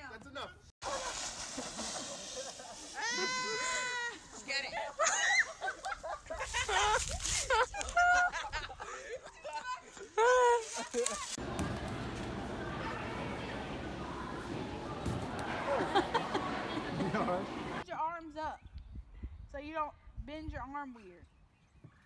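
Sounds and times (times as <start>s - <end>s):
children shrieking and squealing: 2.9s - 5.8s.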